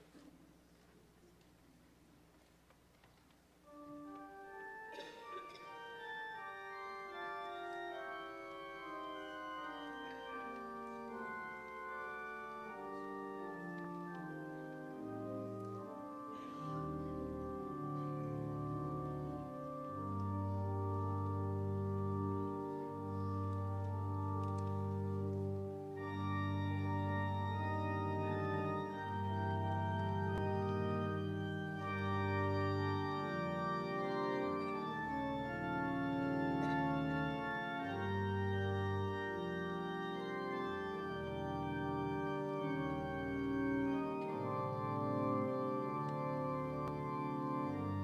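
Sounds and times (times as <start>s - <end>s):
church organ playing chords: 3.6s - 48.0s.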